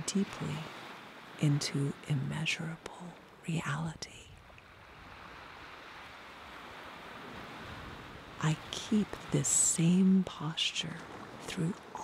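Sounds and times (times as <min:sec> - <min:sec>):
ocean surf on rocks: 0:00.0 - 0:12.0.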